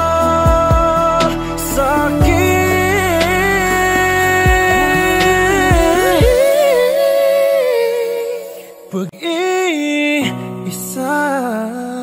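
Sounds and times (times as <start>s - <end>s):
bass and drums: 0.0s - 6.5s
soft accompaniment: 0.0s - 8.6s
man singing long note: 0.0s - 10.3s.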